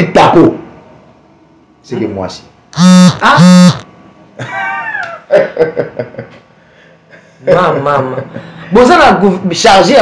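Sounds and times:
person laughing: 0:04.4 - 0:06.2.

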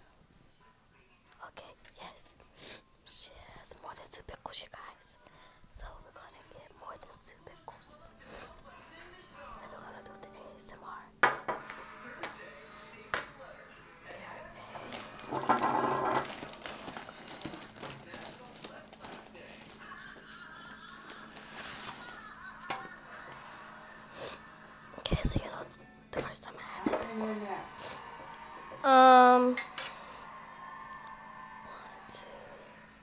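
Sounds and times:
faint music: 0:00.0 - 0:33.0
person whispering: 0:03.1 - 0:08.6.

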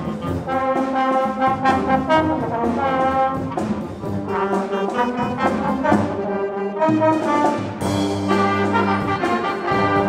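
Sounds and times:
wind band playing: 0:00.0 - 0:10.0.

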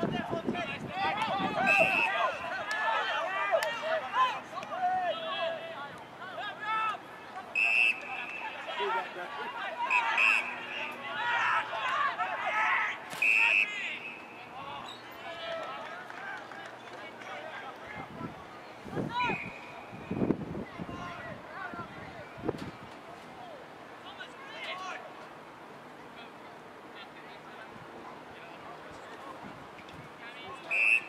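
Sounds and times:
babble of shouting voices: 0:00.0 - 0:25.1
short whistle blasts: 0:01.6 - 0:02.2, 0:07.6 - 0:08.6, 0:09.9 - 0:10.6, 0:13.1 - 0:15.0, 0:19.3 - 0:20.2, 0:30.7 - 0:31.0.

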